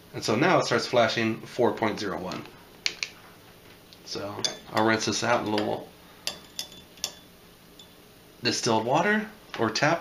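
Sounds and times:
probe clinking against glass: 6.3 - 8.0.

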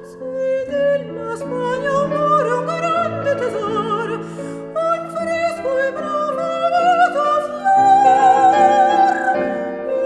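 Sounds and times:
piano accompaniment: 0.0 - 10.0
soprano singing with vibrato: 0.0 - 10.0.

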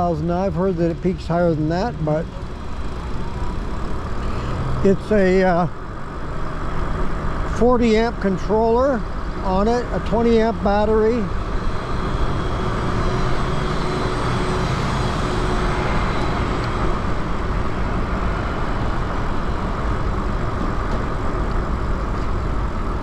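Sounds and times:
bicycle road noise: 0.0 - 23.0.

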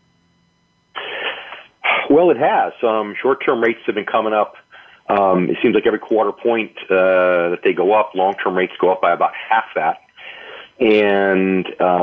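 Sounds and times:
breath-like noise over telephone: 1.0 - 2.1, 4.6 - 5.1, 10.2 - 10.8.

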